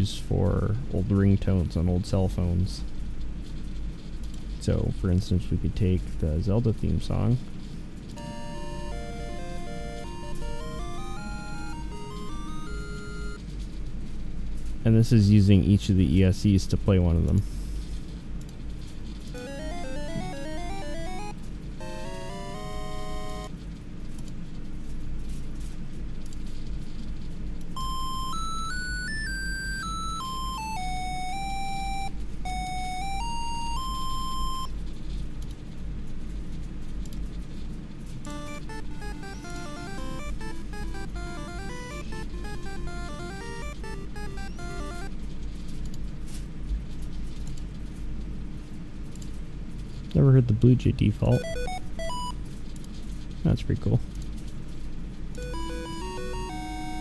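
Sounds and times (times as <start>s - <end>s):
drone motors beeping melodies: 8.2s - 13.4s, 19.4s - 23.5s, 27.8s - 34.7s, 38.3s - 45.1s, 51.3s - 52.3s, 55.4s - 57.0s
steady hum: 27.8s - 34.9s.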